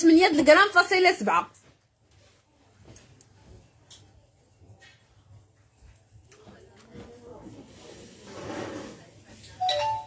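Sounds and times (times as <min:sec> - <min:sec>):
two-note chime: 0:09.6 - 0:10.0.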